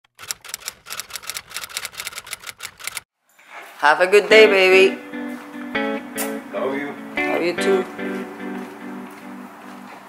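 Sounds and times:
rapid key clicking: 0.1s - 3.0s
person speaking: 3.8s - 5.1s, 6.4s - 8.3s.

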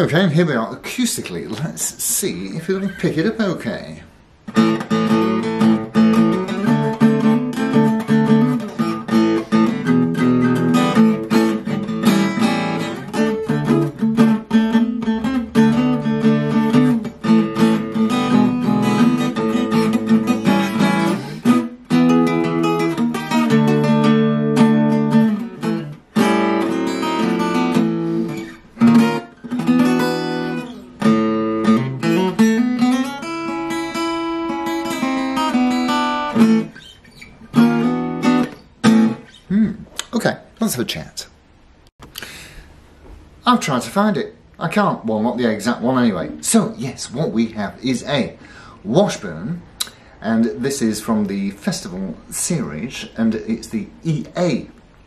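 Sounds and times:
acoustic guitar chords and notes: 4.2s - 40.2s, 49.7s - 55.0s.

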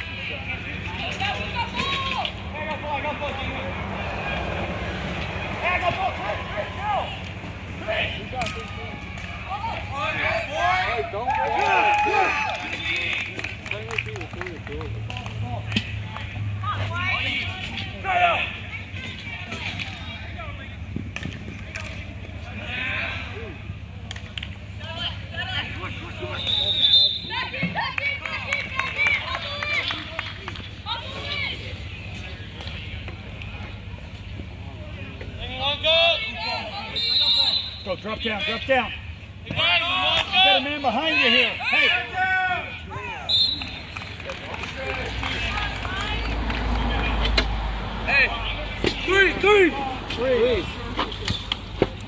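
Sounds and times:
players shouting and calling: 0.0s - 52.0s.

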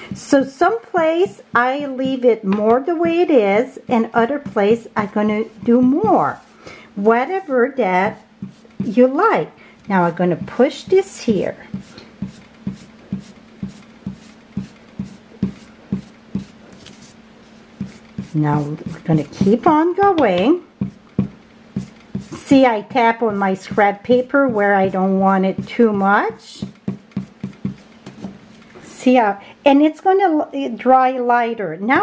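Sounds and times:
faint steady hum: 0.0s - 32.0s
sponge dauber tapping paper: 1.5s - 11.1s, 11.7s - 22.4s, 23.6s - 28.4s.

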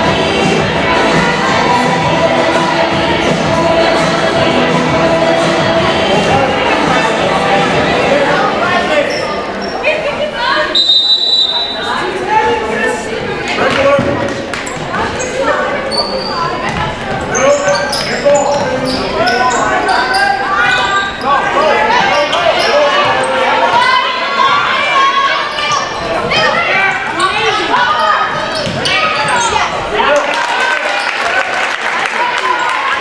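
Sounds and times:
voices echoing in gym: 0.0s - 33.0s
basketball bouncing on hardwood: 28.6s - 28.8s.

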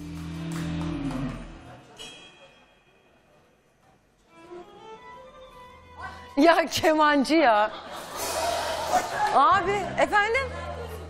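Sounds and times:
music: 0.0s - 1.9s, 4.2s - 11.0s.

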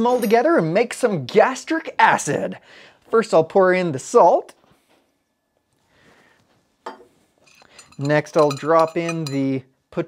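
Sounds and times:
metal dish clinking on glass: 6.9s - 9.6s.

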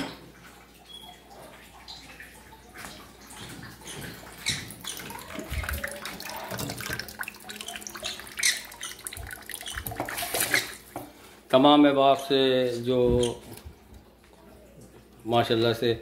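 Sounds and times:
water splashing and dripping: 0.0s - 11.2s.

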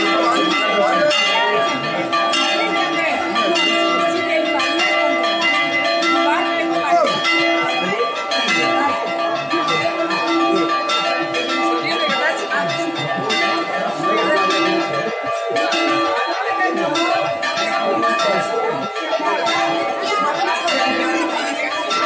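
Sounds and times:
church bells ringing: 0.0s - 22.0s.

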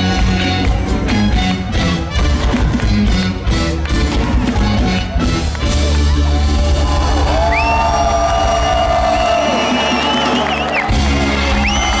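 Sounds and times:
crowd cheering and whooping: 5.2s - 12.0s.

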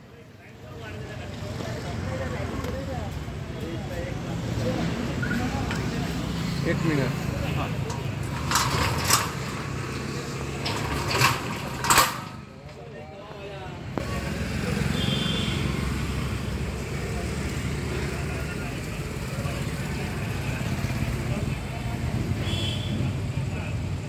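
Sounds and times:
indistinct voices: 1.9s - 22.2s.

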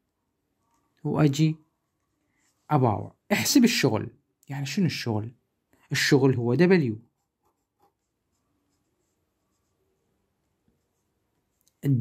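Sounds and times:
pen scratching on paper: 7.0s - 11.6s.

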